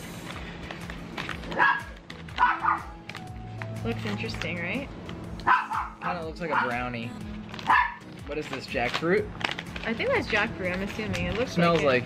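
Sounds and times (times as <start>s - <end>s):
quiet background music: 0.0s - 12.0s
dog barking: 1.5s - 3.0s, 5.4s - 6.9s, 7.6s - 8.1s.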